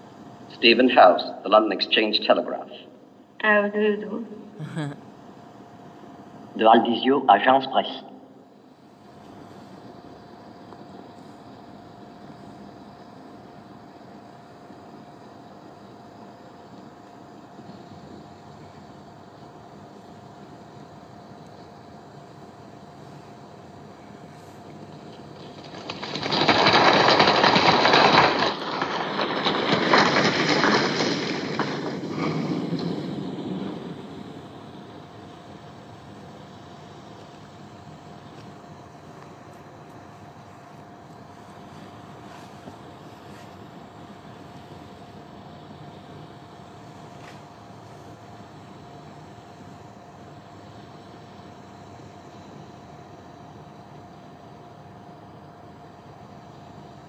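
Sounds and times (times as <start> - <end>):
outdoor background hum: 0.0 - 57.0.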